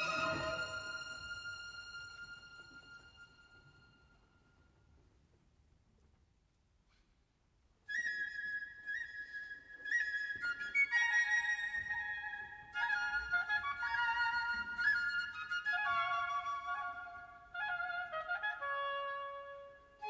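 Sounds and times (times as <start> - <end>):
high flute line: 0.0 - 4.1.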